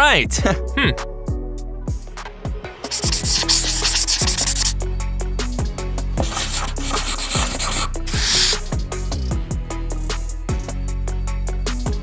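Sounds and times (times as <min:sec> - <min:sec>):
music with deep bass beat: 0:00.2 - 0:12.0
marker rubbing on whiteboard: 0:02.9 - 0:04.8, 0:06.2 - 0:08.6.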